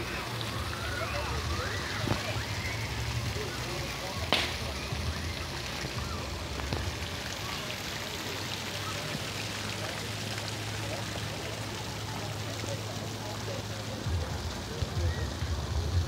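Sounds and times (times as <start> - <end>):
fountain water splashing: 0.0 - 16.0.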